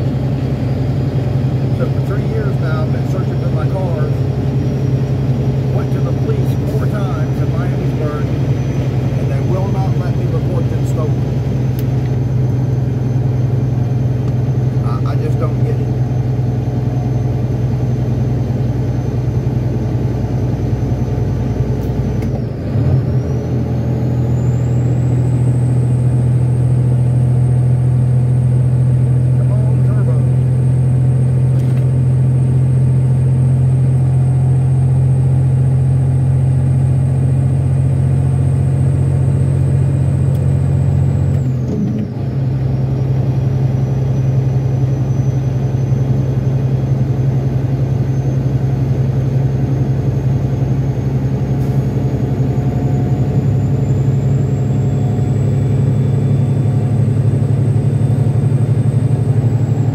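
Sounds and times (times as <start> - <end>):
road noise: 0.0 - 59.9
truck diesel engine drone: 0.0 - 59.9.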